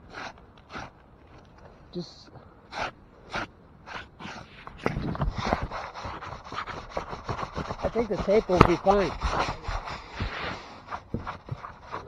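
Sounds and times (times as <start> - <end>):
scraping rubbing and knocking: 4.2 - 12.0.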